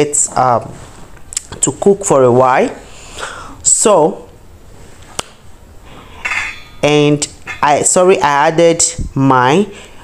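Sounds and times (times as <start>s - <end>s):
woman speaking: 0.0s - 0.8s, 1.4s - 2.9s, 3.6s - 4.3s, 6.8s - 9.8s
faint metallic clatter: 6.2s - 7.8s
utensil clinking metal pot: 6.2s - 8.0s.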